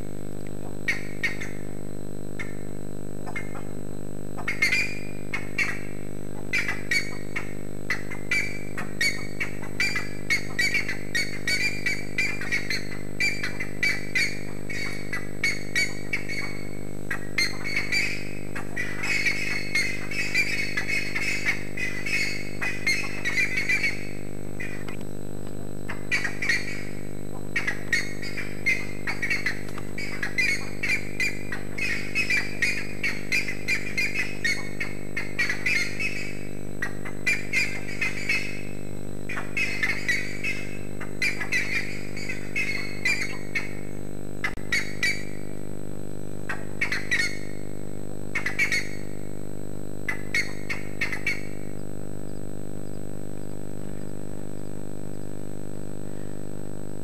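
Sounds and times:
low hum: 0:00.0 - 0:57.0
birds squawking and chattering: 0:00.7 - 0:01.7, 0:04.4 - 0:25.0, 0:25.8 - 0:45.4, 0:46.5 - 0:47.6, 0:48.3 - 0:49.1, 0:50.1 - 0:51.7.

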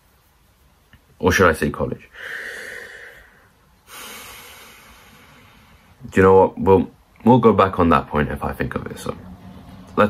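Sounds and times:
man breathing noisily: 0:02.1 - 0:06.0.

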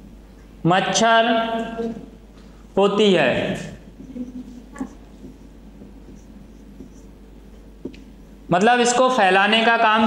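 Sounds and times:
marker writing on whiteboard: 0:03.9 - 0:08.5.

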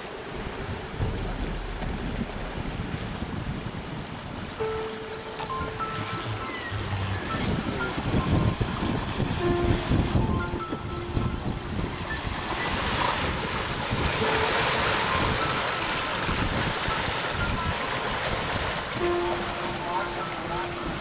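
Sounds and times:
water rushing along hull: 0:00.0 - 0:21.0
wind buffeting microphone: 0:00.0 - 0:21.0
background music: 0:04.6 - 0:21.0.

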